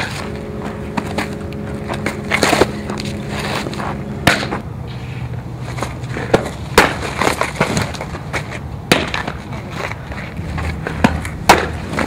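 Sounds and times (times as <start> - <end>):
outdoor field noise: 0.0 - 12.0.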